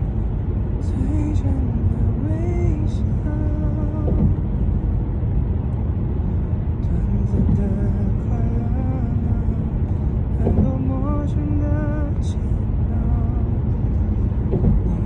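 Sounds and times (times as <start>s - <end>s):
car cabin rumble: 0.0s - 15.0s
man singing softly a cappella: 0.8s - 4.4s, 6.8s - 15.0s.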